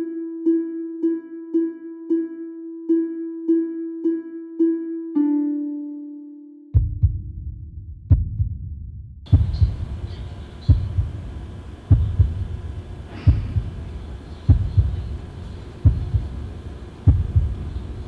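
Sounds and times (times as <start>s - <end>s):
heartbeat thumps: 6.8s - 18.0s.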